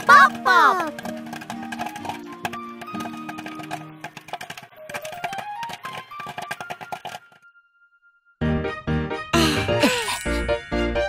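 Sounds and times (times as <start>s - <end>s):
cartoon popcorn pops: 0.0s - 7.4s
light children's music: 0.0s - 11.0s.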